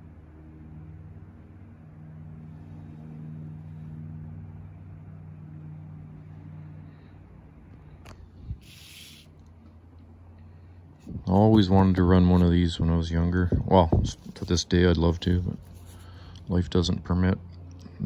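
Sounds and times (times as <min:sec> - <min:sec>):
low mechanical hum: 0:00.0 - 0:18.0
brief hiss: 0:08.6 - 0:09.3.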